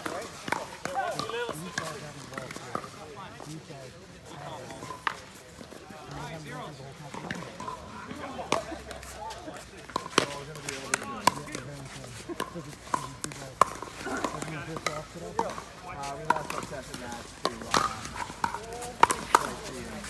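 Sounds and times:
paddles hitting plastic ball: 0.0 - 2.9, 9.8 - 20.0
ball bouncing on court: 0.0 - 3.0, 9.9 - 11.7, 12.3 - 20.0.

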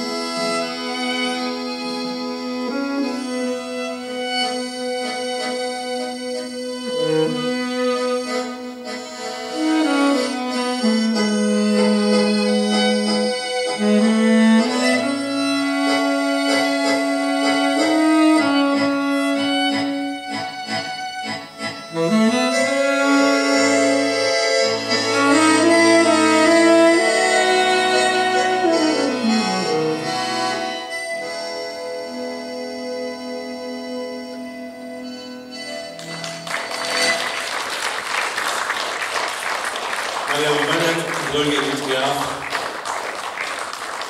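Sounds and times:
accordion bass notes: 0.0 - 44.0
accordion melody: 0.0 - 44.0
quick repeated accordion chords: 0.0 - 44.0.

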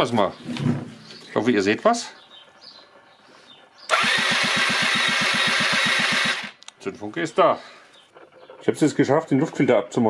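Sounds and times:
electric starter cranking engine: 3.9 - 6.6.

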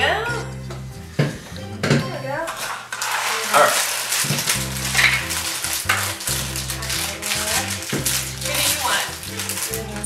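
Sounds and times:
background music: 0.0 - 10.0
foil wrappers crinkling: 2.4 - 10.0.

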